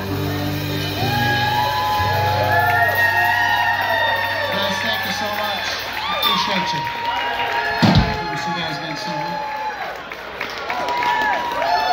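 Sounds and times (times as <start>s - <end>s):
rock band playing: 0.0s - 7.0s.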